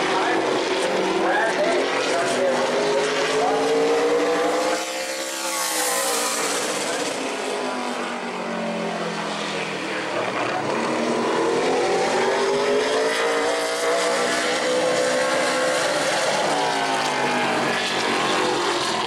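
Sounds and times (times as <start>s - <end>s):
race car engine at speed: 0.0s - 19.0s.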